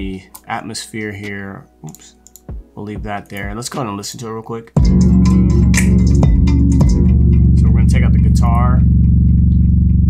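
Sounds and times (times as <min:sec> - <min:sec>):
guitar part: 0:04.8 - 0:08.9
sharp percussion hits: 0:04.8 - 0:09.4
deep sustained bass: 0:04.8 - 0:10.0.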